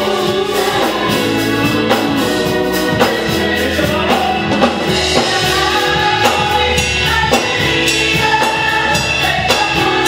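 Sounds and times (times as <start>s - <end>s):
drums keeping steady beat: 0.0s - 10.0s
gospel group singing in harmony: 0.0s - 10.0s
live band accompaniment: 0.0s - 10.0s.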